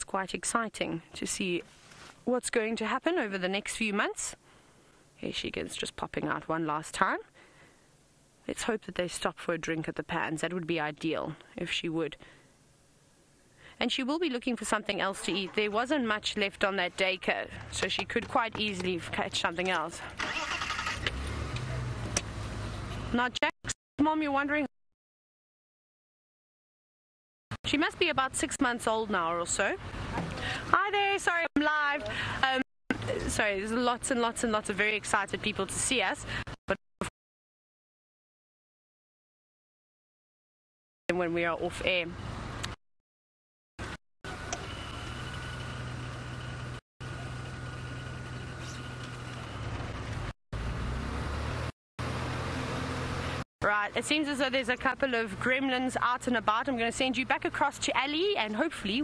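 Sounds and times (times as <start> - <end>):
vehicle engine rumble: 14.8 - 23.2, 29.1 - 30.8, 43.8 - 59.0
vehicle engine running: 43.8 - 53.4.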